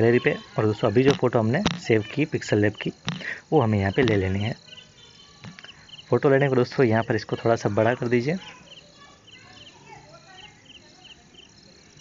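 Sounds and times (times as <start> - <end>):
man talking: 0.0 - 4.6, 6.1 - 8.5
faint high-pitched background sound: 0.0 - 12.0.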